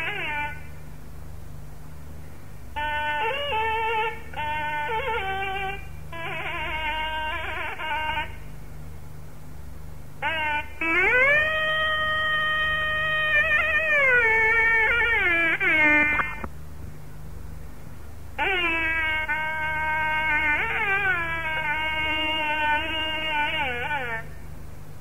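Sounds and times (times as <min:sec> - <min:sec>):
nadaswaram melody: 0:00.0 - 0:00.8, 0:02.7 - 0:08.5, 0:10.2 - 0:16.5, 0:18.3 - 0:24.6.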